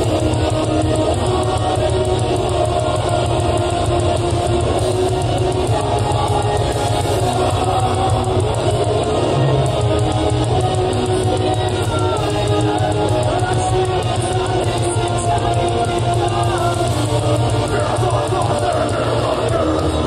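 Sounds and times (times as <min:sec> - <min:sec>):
bass and drums: 0:00.0 - 0:20.0
distorted electric guitars: 0:00.0 - 0:20.0.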